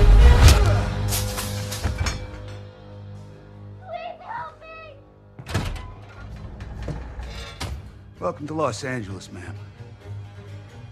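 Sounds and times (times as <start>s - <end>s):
film score music: 0.0s - 10.9s.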